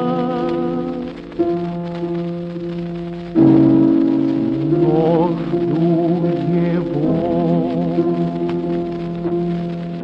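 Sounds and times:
old recording hiss and crackle: 0:00.0 - 0:10.0.

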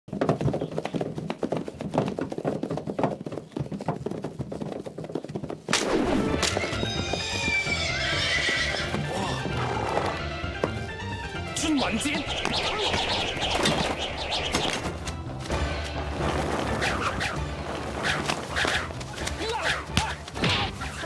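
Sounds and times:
rapid hoofbeats on dirt: 0:00.0 - 0:11.1, 0:17.4 - 0:19.4
horses whinnying: 0:05.9 - 0:10.3
music track: 0:09.0 - 0:21.0.

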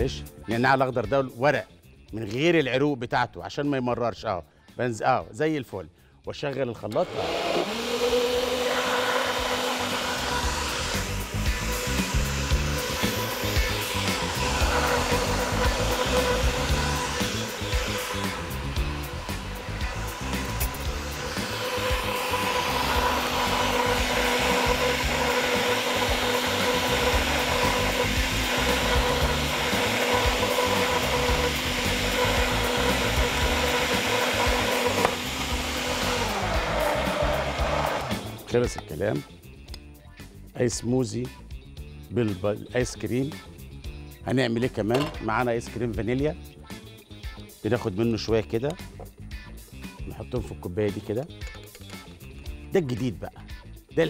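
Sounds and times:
blender motor whining: 0:06.9 - 0:38.8.

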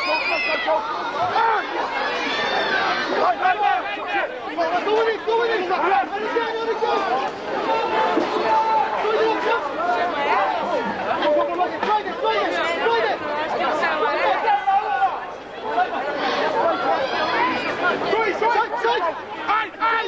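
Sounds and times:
babble of overlapping voices: 0:00.0 - 0:20.0.

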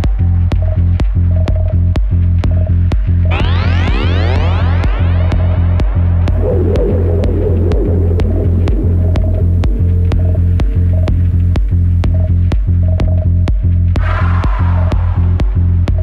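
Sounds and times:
deep sub-bass: 0:00.0 - 0:16.0
electronic dance music: 0:03.3 - 0:11.2
warbling synth line: 0:03.3 - 0:11.2.

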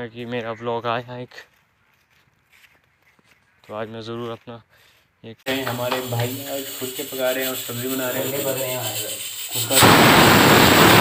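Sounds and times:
person talking: 0:05.5 - 0:09.8
rolling pin rubbing on board: 0:05.6 - 0:09.6.

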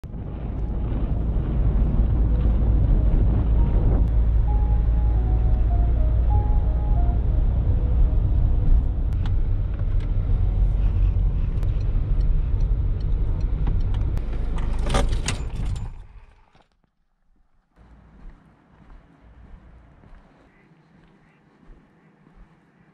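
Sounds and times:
car engine and road rumble: 0:00.0 - 0:16.6, 0:17.5 - 0:20.6
faint melodic notes: 0:02.3 - 0:09.2.

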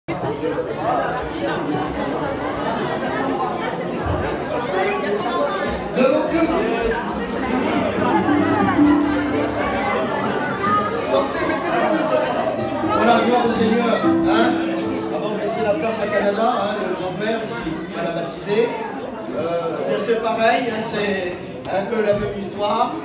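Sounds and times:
crowd chatter: 0:00.1 - 0:23.0
faint music: 0:07.3 - 0:18.2.

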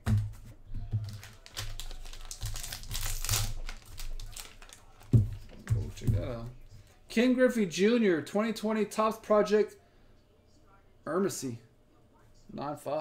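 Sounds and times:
plastic crinkling: 0:00.9 - 0:06.1.

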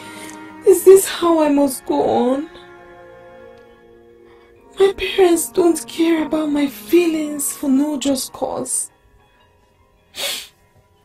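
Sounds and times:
faint background music: 0:00.0 - 0:11.0
woman sniffling: 0:10.2 - 0:10.6.

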